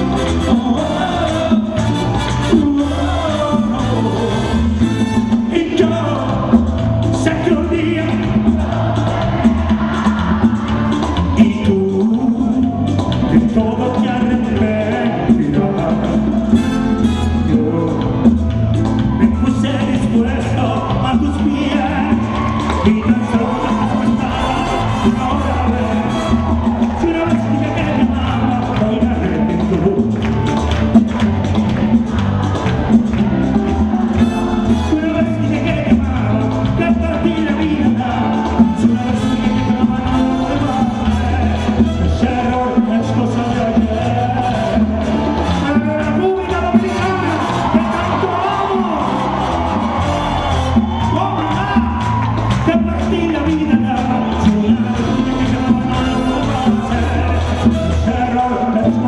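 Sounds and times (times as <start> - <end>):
man singing into microphone: 0.0 - 8.7, 9.6 - 16.8, 17.4 - 18.5, 19.2 - 30.3, 34.2 - 49.5, 52.6 - 59.0
crowd voices: 0.0 - 59.0
live merengue band playing: 0.0 - 59.0
audience cheering: 19.3 - 59.0.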